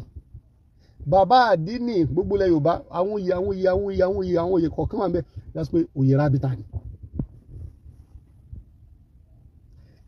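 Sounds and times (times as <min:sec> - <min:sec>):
low rumble in car cabin: 0:00.0 - 0:10.0.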